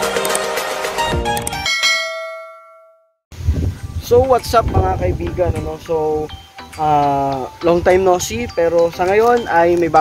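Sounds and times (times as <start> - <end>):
background music: 0.0 - 2.1, 3.7 - 10.0
bell-like chime: 1.6 - 3.2.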